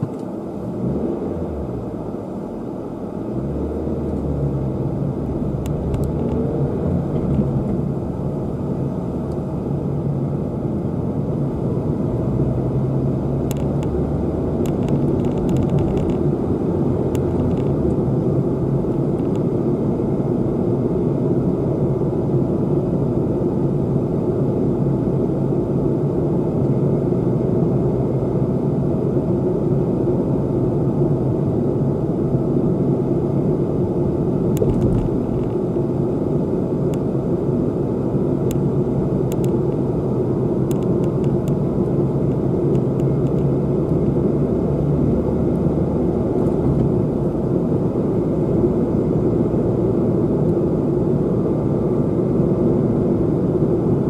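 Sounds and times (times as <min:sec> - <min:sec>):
tyre and road noise: 0:00.0 - 0:10.2, 0:11.3 - 0:20.8, 0:32.6 - 0:54.0
car engine running: 0:00.0 - 0:54.0.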